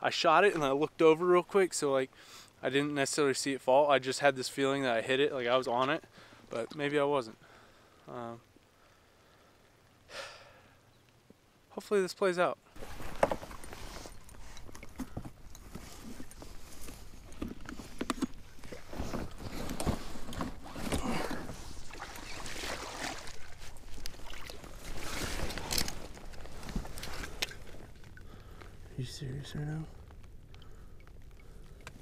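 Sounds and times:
dry grass rustling and scraping: 12.8 - 28.0.

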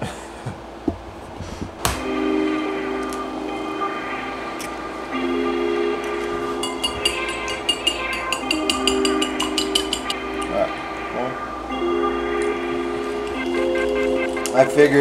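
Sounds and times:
background music with sustained chords: 1.8 - 15.0.

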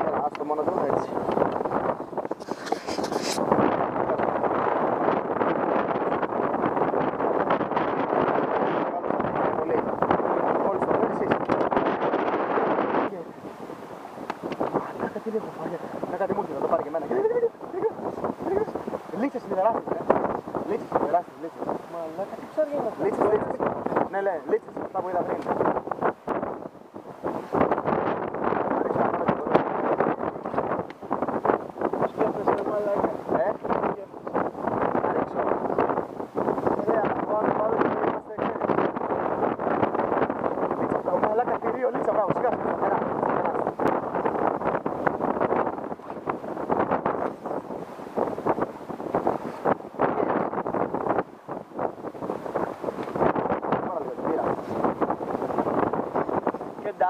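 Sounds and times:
wind buffeting microphone: 0.0 - 57.0.

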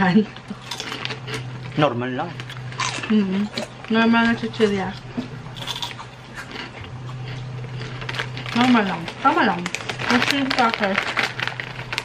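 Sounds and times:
crunching and chewing crisp chip: 0.0 - 12.0.

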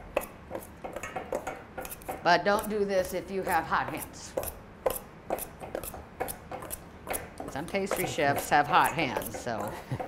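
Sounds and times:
metal utensils scraping steel bowls: 6.6 - 10.0.

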